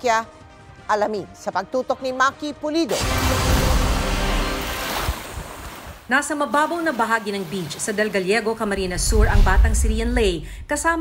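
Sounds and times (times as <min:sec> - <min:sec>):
deep rumble: 0:08.8 - 0:11.0.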